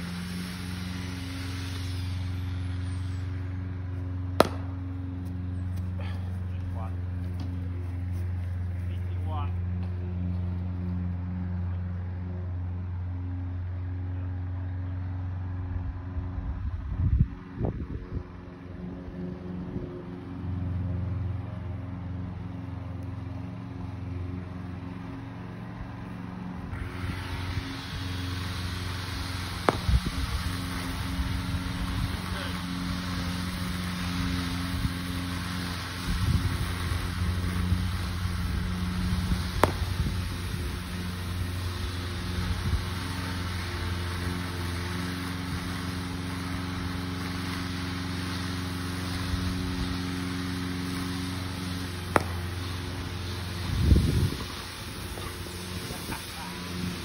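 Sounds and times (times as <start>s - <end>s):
wide hiss: 0.0s - 3.7s, 26.7s - 57.0s
motor humming: 0.0s - 8.9s, 18.4s - 57.0s
cricket bat striking ball: 4.4s - 4.8s, 39.6s - 40.0s, 52.1s - 52.5s.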